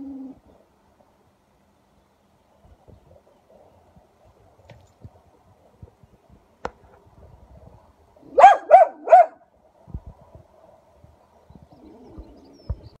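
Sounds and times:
animal barking: 8.3s - 9.4s.

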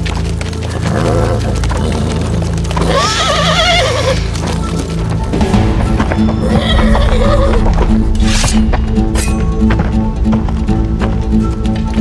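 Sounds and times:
background music: 0.0s - 12.0s
horse whinnying: 0.8s - 4.6s, 6.4s - 7.7s.

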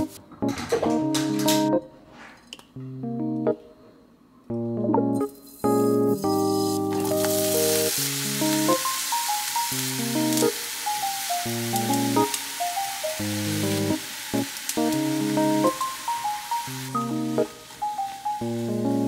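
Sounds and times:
light instrumental music: 0.0s - 2.2s, 2.8s - 3.7s, 4.5s - 19.0s
vegetables sizzling in a pan: 5.8s - 19.0s.

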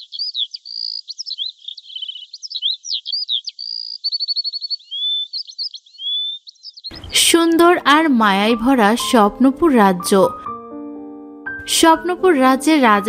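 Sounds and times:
fast bird trill: 0.0s - 7.5s
small birds chirping: 0.0s - 7.7s.

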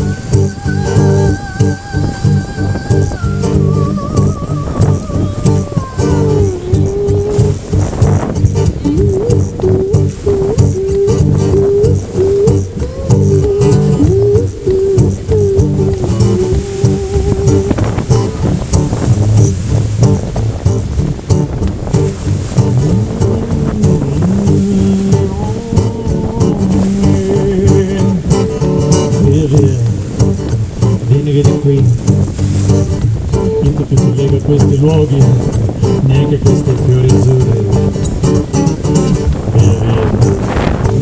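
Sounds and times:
wordless vocal melody: 0.0s - 21.0s, 22.0s - 41.0s
acoustic guitar strumming: 0.0s - 41.0s.

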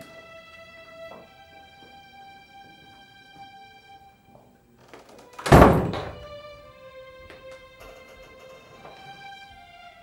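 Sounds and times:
soft string music: 0.0s - 10.0s
wooden door shutting: 4.8s - 6.5s.

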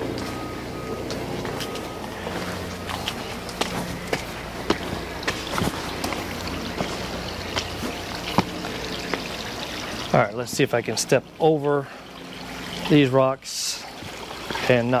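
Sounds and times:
steady hum: 0.0s - 15.0s
water trickling: 0.0s - 15.0s
footsteps on stone: 0.1s - 9.4s.

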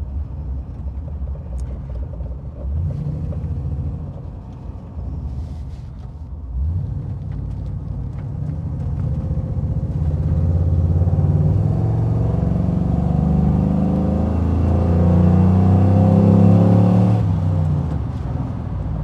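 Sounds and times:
car engine running: 0.0s - 19.0s.

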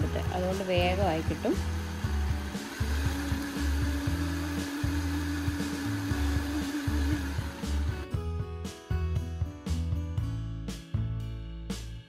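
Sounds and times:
blender motor whirring: 0.0s - 8.3s
background music with low beat: 0.0s - 12.0s.

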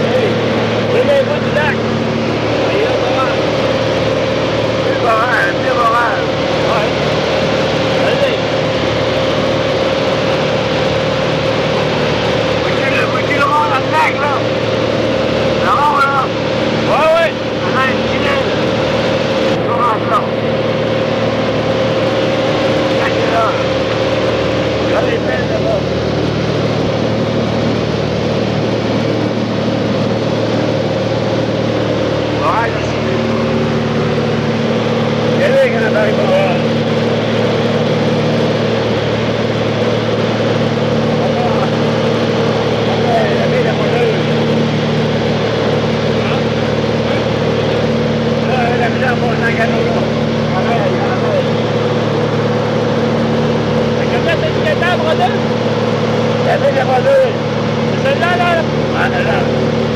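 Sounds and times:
propeller plane engine drone: 0.0s - 59.9s.

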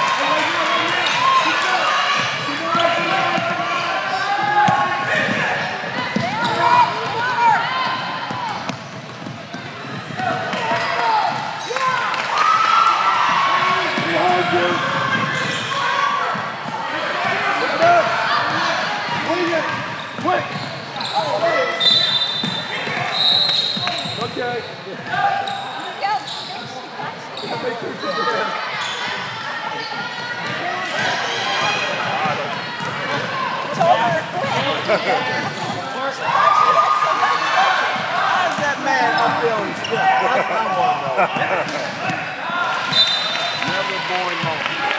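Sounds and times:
shoe squeals: 6.2s - 7.1s, 14.2s - 16.0s, 19.8s - 30.5s, 42.8s - 43.8s.

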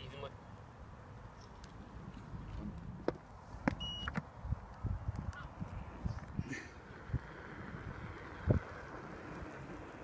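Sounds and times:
wind and handling on microphone: 1.3s - 10.0s.

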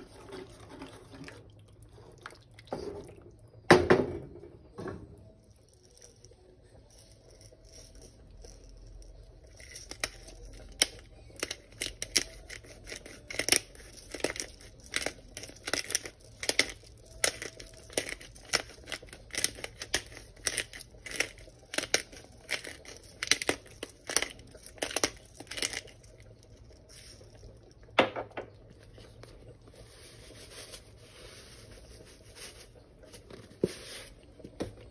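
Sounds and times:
spice grinder crunching: 5.4s - 27.9s.

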